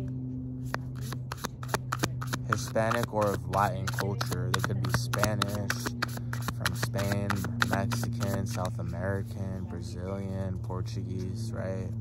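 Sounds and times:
cards being shuffled: 0.6s - 8.8s.

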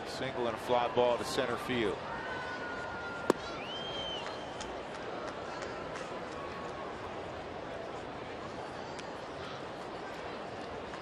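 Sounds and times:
crowd hum and chatter: 0.0s - 11.0s
baseball popping into mitt: 3.3s - 3.5s.

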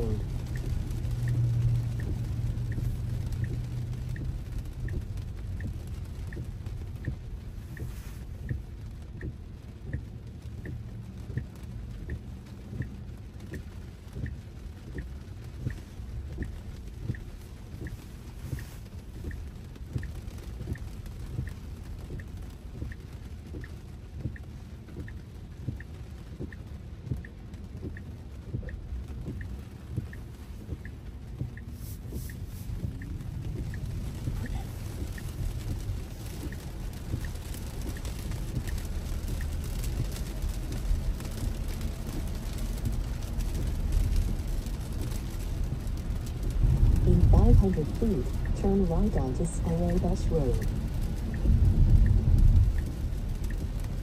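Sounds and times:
heavy rain drumming on car: 0.0s - 54.0s
turn signal ticking: 0.0s - 54.0s
tyre and road noise on wet pavement: 0.0s - 54.0s.

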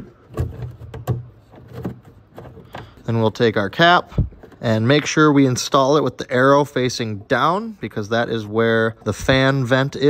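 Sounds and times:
plastic knocks and wire rustles: 0.0s - 3.2s, 4.1s - 5.2s.

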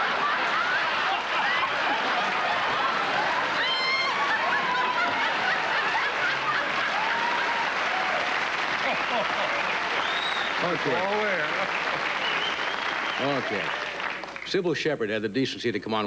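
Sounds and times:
audience laughing: 0.0s - 12.5s
audience applauding: 0.0s - 14.6s
individual laughs: 8.8s - 9.6s.

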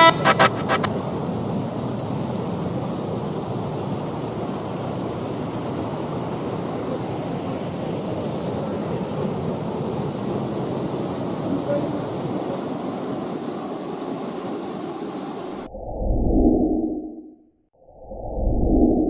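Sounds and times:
song: 0.0s - 0.9s.

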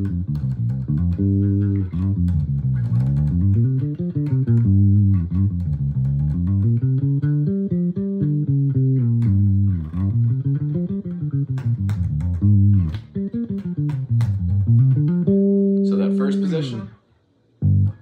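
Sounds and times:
electric bass plucked notes: 0.0s - 17.0s, 17.6s - 18.0s.

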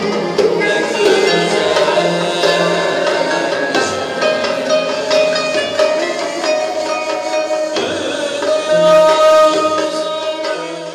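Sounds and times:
plucked oud notes: 0.0s - 10.9s
sustained bowed violin notes: 8.7s - 10.9s.

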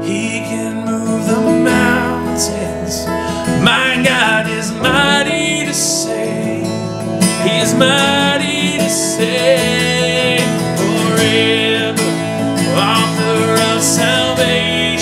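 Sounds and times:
keyboard: 0.0s - 15.0s
man singing worship song: 0.0s - 15.0s
strummed acoustic guitar: 0.0s - 15.0s.

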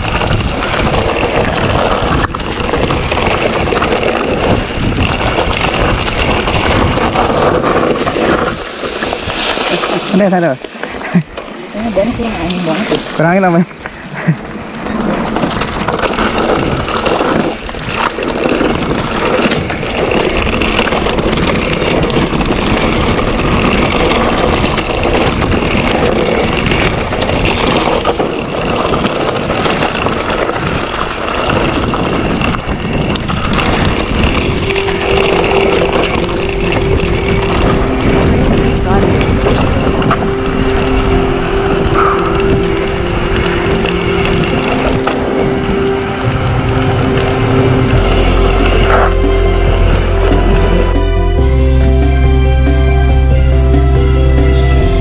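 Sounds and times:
bike rattling over bumps: 0.0s - 55.0s
wind rush: 0.0s - 55.0s
deep bass: 45.8s - 55.0s.

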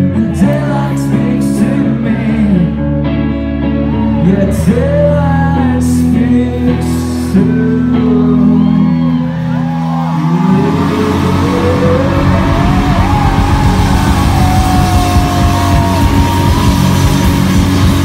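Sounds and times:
held guitar chords: 0.0s - 18.0s
loud live rock band: 0.0s - 18.0s
sustained high guitar line: 5.5s - 18.0s.

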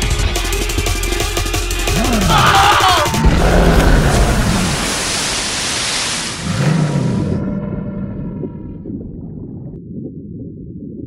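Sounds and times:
ocean wave crashing: 2.8s - 7.4s.

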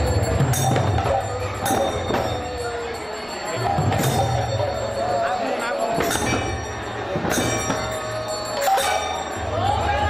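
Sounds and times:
drums beating: 0.0s - 5.2s, 5.8s - 10.0s
bells ringing: 0.0s - 10.0s.

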